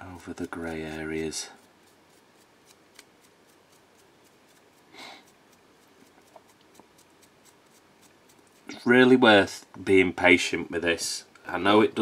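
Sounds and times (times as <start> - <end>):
paintbrush bristles scratching: 0.0 - 9.6.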